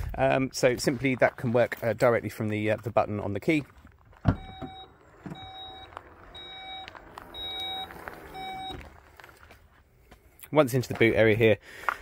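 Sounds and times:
tailgate motor whine: 0:04.2 - 0:09.4
warning beeps: 0:04.3 - 0:08.9.

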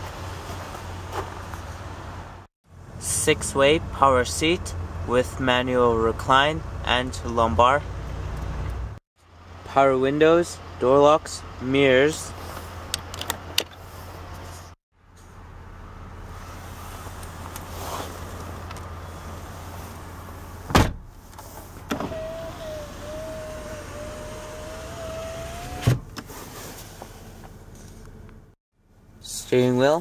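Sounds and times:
loud thump: 0:20.7 - 0:21.1
power window motor whine: 0:21.9 - 0:26.0.

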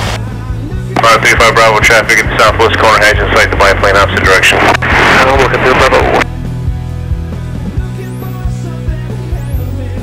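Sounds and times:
man talking over radio: 0:01.0 - 0:06.2
background music held notes: 0:04.8 - 0:10.0.

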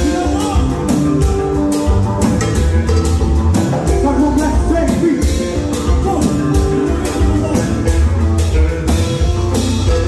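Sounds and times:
drum kit: 0:00.0 - 0:10.0
electric guitar: 0:00.0 - 0:10.0
heavy bass line: 0:00.0 - 0:10.0.

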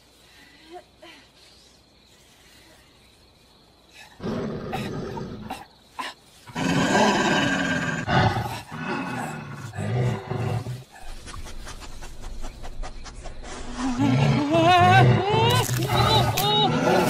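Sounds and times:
guttural roaring and growling: 0:13.9 - 0:17.0.

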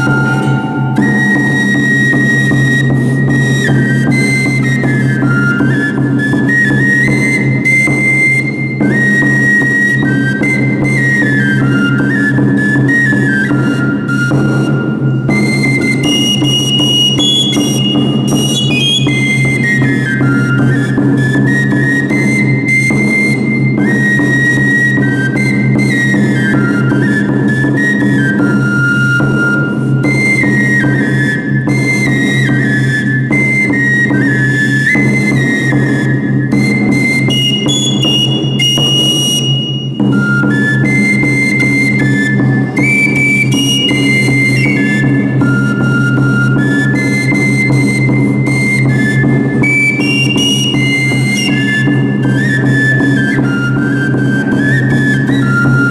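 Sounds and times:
steady low drone: 0:00.0 - 0:03.6
drum beat: 0:00.0 - 0:03.8
flute melody: 0:00.0 - 0:55.9.

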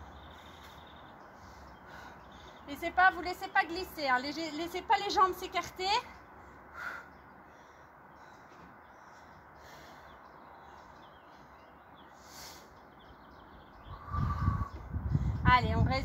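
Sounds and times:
faint outdoor ambience: 0:00.0 - 0:16.0
faint bird chirps: 0:06.8 - 0:15.4.

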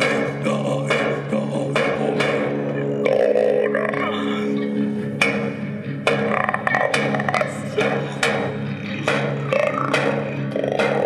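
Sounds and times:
person singing: 0:00.0 - 0:05.2, 0:06.5 - 0:11.0
low string drone: 0:00.0 - 0:11.0.

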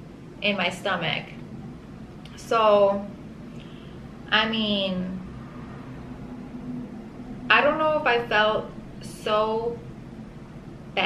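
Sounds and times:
faint hum: 0:00.0 - 0:11.0
low room noise: 0:00.0 - 0:11.0.

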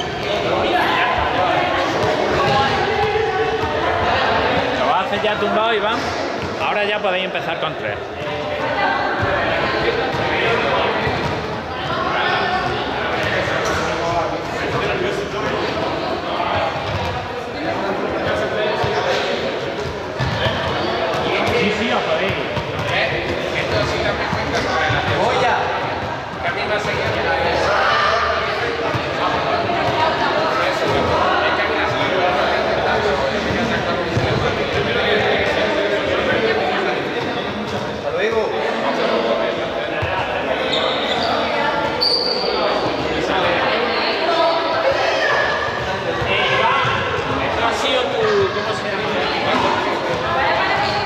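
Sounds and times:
echoing chatter of voices: 0:00.0 - 0:51.0
balls bouncing on hard floor: 0:19.8 - 0:27.3, 0:33.4 - 0:34.9.

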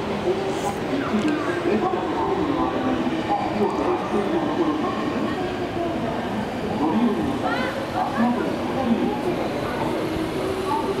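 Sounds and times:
people's voices: 0:00.0 - 0:11.0
train running: 0:00.0 - 0:11.0.

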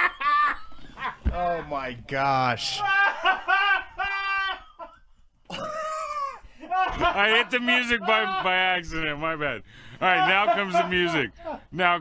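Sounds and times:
man laughing hard: 0:00.0 - 0:01.2, 0:02.7 - 0:08.4.

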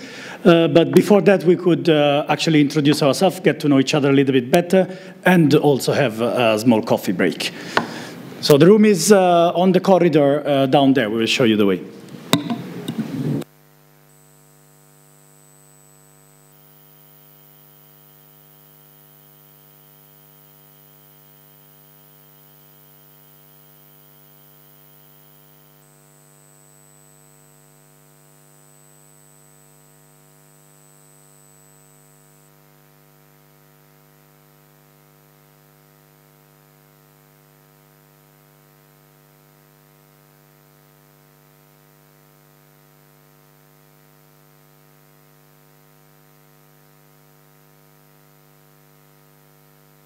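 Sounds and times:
faint electrical hum: 0:00.0 - 0:50.0
sharp knock: 0:12.3 - 0:13.1.

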